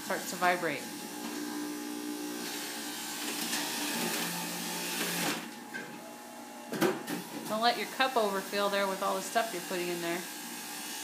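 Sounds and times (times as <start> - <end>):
juicer grinding produce: 0.0 - 11.0
juicer motor humming: 0.0 - 11.0.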